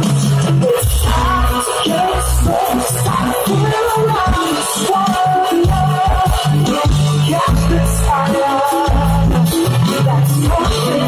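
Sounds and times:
deep bass notes: 0.0s - 11.0s
live band through loudspeakers: 0.0s - 11.0s.

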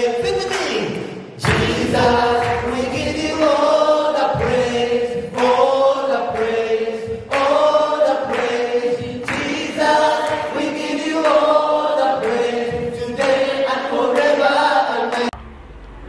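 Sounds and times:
man singing into microphone: 0.0s - 15.3s
group singing gospel song: 0.0s - 15.4s.

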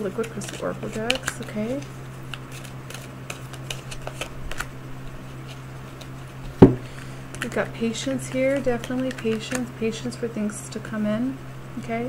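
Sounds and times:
cards being handled: 0.0s - 9.7s
steady low hum: 0.0s - 12.0s
sharp knock: 6.6s - 6.9s.

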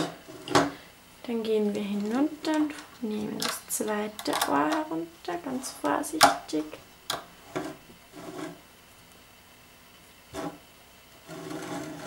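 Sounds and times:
plastic rubbing on wooden table: 7.4s - 8.6s, 10.3s - 10.6s, 11.2s - 12.0s
plastic scraping on table: 7.5s - 8.6s, 10.3s - 10.6s, 11.2s - 12.0s.

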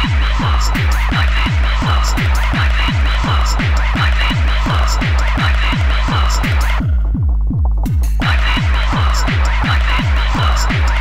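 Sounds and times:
deep kick drum: 0.0s - 11.0s
electronic dance music: 0.0s - 11.0s.

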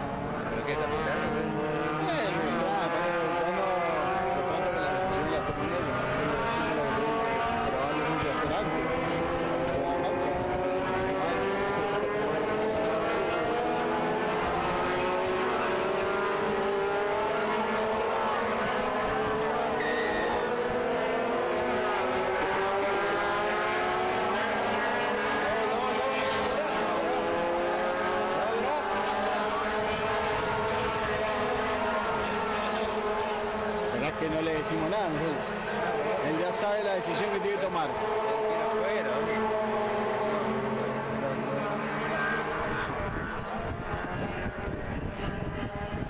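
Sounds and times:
engine droning: 0.0s - 36.4s.

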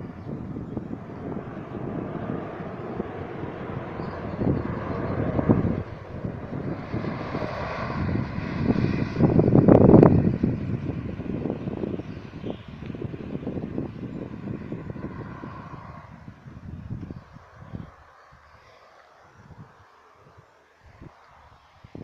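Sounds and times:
engine hum: 0.0s - 20.4s
wind buffeting microphone: 0.0s - 22.0s.

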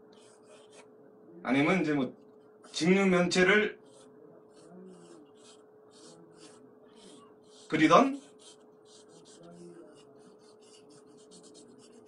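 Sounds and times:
scratchy brush strokes: 3.8s - 12.0s.

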